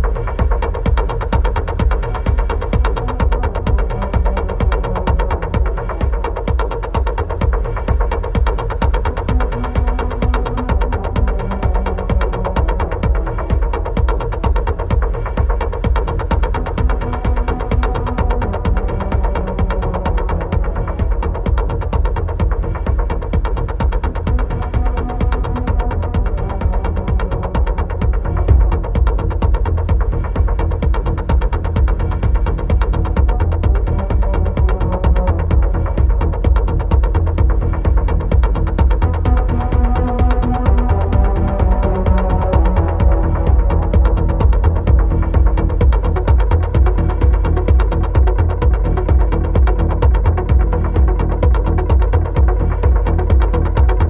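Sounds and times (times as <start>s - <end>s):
droning synth tones: 0.0s - 54.0s
heavy bass pulse: 0.0s - 54.0s
kick drum: 0.0s - 54.0s
percussion ticks: 0.0s - 54.0s.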